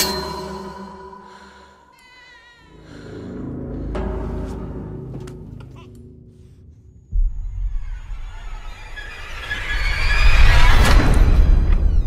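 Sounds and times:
low rumble of trailer music: 0:02.7 - 0:12.0.

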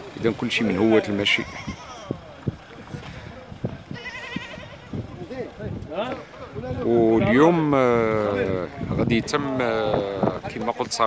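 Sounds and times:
quavering high-pitched bleat: 0:01.3 - 0:02.1, 0:03.9 - 0:04.9.

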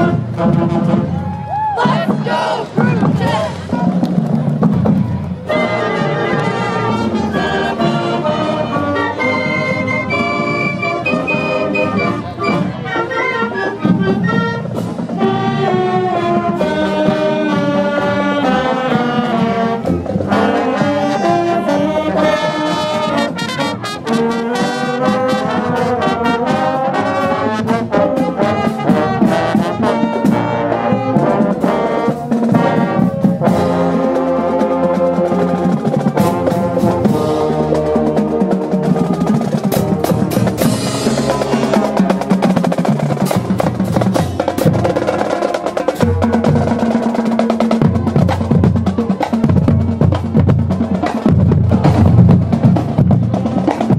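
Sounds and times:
brass and saxophones melody: 0:00.0 - 0:03.9, 0:05.4 - 0:53.9.

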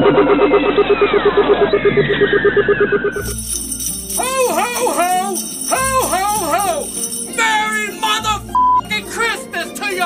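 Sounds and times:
jingle of bells: 0:03.2 - 0:10.0.

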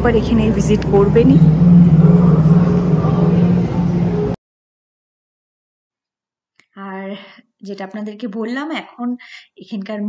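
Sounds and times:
loud low hum: 0:00.0 - 0:04.4.

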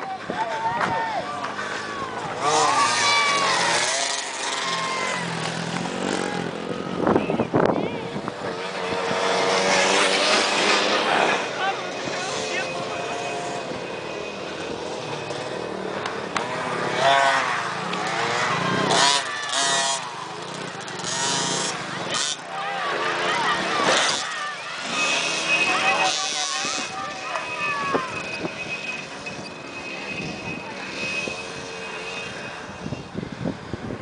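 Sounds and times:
people's voices: 0:00.0 - 0:33.4
dirt bike engines revving: 0:00.0 - 0:34.0.

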